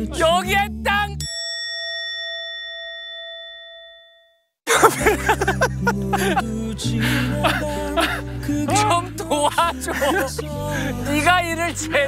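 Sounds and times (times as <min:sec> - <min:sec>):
background music: 0:00.0 - 0:01.4, 0:04.7 - 0:12.0
bell ding sound effect: 0:01.2 - 0:04.5.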